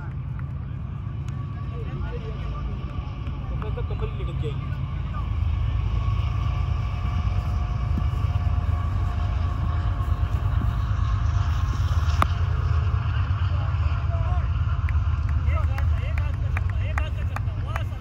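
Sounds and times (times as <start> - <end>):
wind rumble on microphone: 0.0 - 18.0.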